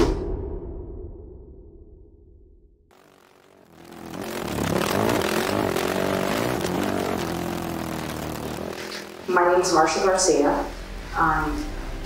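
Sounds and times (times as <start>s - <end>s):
quad engine revving: 2.9s - 10.6s.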